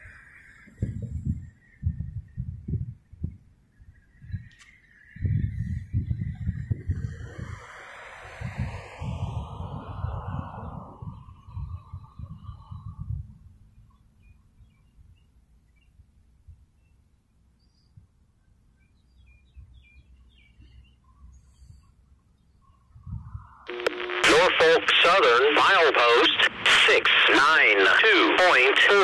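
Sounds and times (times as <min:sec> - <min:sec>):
wind buffeting microphone: 0:00.0 - 0:13.9, 0:22.4 - 0:23.7
whooshing noise: 0:05.4 - 0:13.3
faint bird chirps: 0:16.7 - 0:24.2.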